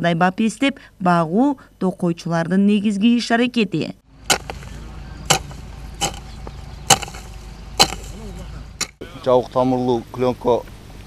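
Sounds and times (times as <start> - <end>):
hoe chopping into soil: 4.2 - 9.0.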